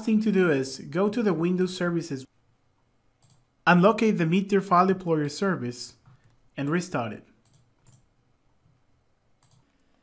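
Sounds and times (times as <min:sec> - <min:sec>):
faint mouse click: 0:09.4 - 0:09.8.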